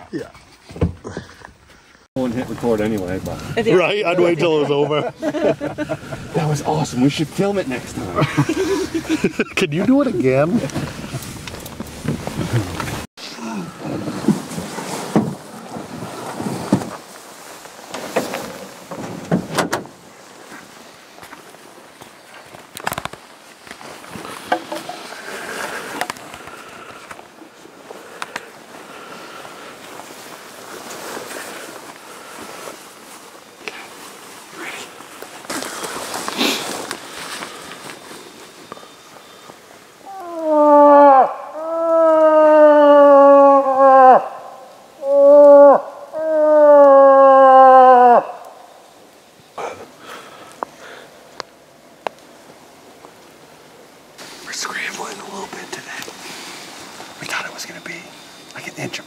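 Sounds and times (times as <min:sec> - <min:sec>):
rustling and gear handling: 0:20.0 - 0:39.8
person voicing moose call: 0:40.0 - 0:48.5.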